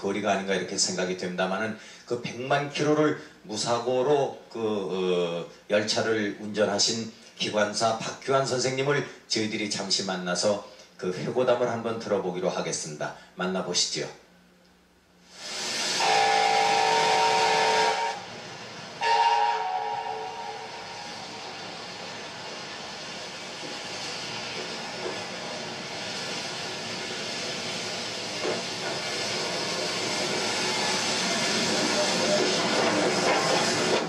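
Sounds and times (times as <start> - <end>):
steam hissing: 15.2 - 34.0
steam locomotive whistle: 15.9 - 18.3, 19.0 - 21.7.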